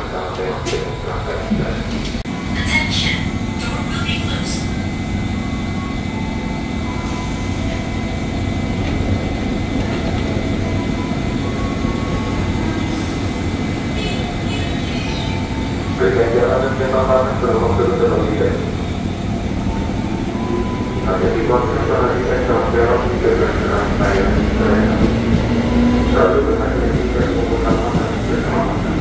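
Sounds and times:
train equipment humming: 0:00.0 - 0:29.0
train doors hissing and closing: 0:06.9 - 0:09.1, 0:11.4 - 0:15.6.

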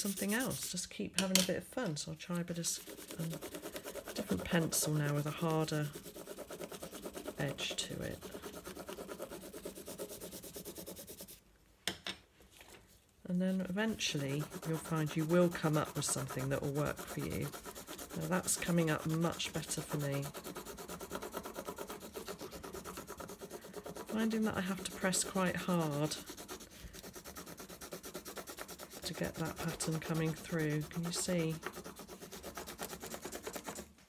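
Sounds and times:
pencil scribbling on paper: 0:00.0 - 0:00.8, 0:02.6 - 0:11.4, 0:13.5 - 0:33.9.

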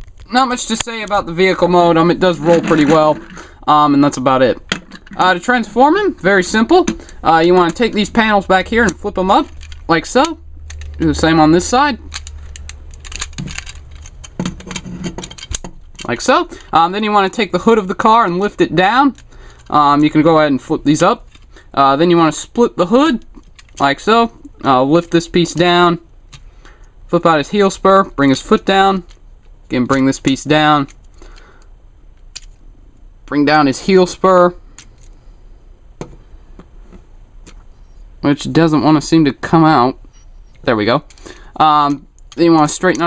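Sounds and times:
plastic toy parts clicking: 0:07.6 - 0:16.3, 0:23.2 - 0:24.0, 0:32.2 - 0:32.6
plastic toy clicks: 0:12.1 - 0:14.4.

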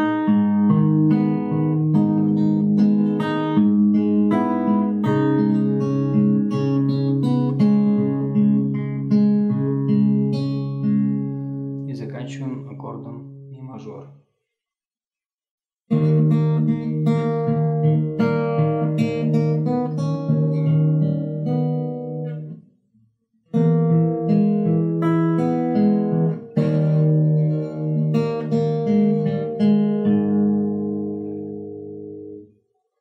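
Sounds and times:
fingerstyle acoustic guitar: 0:00.0 - 0:13.5, 0:15.9 - 0:22.6, 0:23.5 - 0:32.5.

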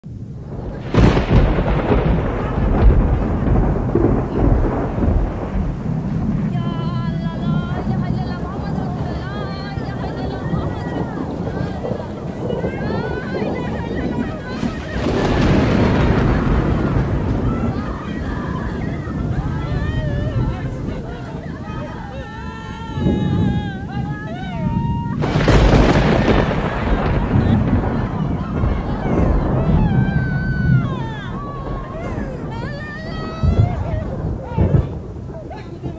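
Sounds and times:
floodwater rushing: 0:00.1 - 0:35.9.

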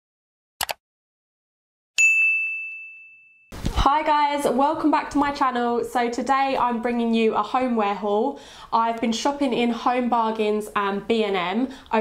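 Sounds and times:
woman's voice: 0:03.7 - 0:12.0.

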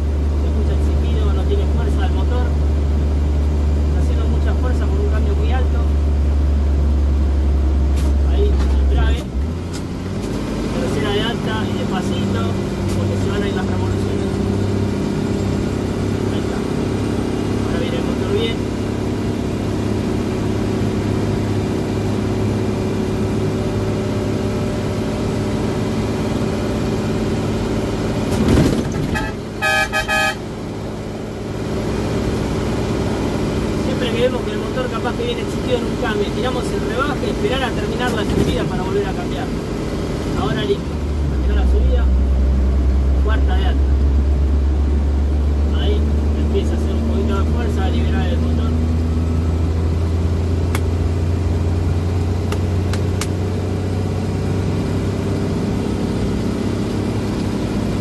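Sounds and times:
truck diesel engine droning: 0:00.0 - 0:58.0
horn toots: 0:29.0 - 0:30.5.

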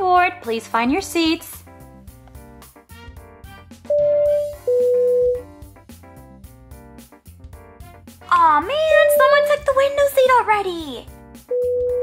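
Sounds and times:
background music with beat and keyboard: 0:01.5 - 0:12.0.

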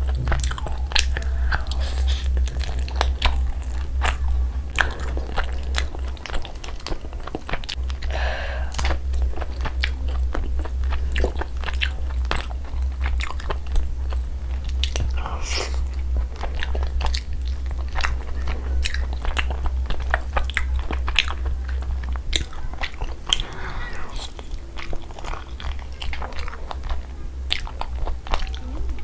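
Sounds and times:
close chewing and biting: 0:00.0 - 0:29.0
steady low hum: 0:00.0 - 0:29.0.

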